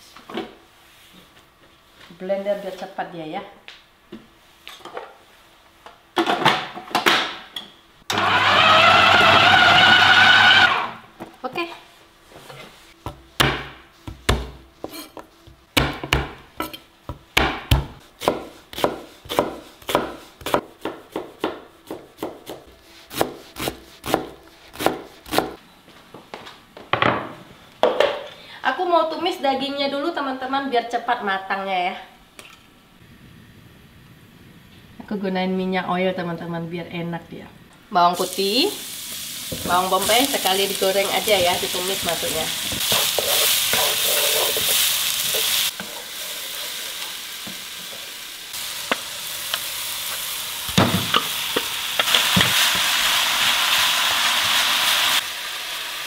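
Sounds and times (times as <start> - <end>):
food processor chopping meat: 8.1 - 11.0
knife chopping on wooden board: 13.1 - 15.0, 17.1 - 25.6.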